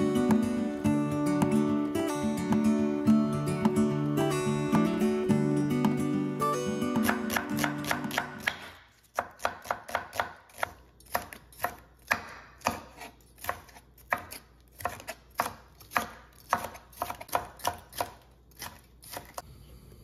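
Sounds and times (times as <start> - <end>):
acoustic guitar music: 0.0 - 8.6
knife chopping on wooden board: 6.9 - 19.4.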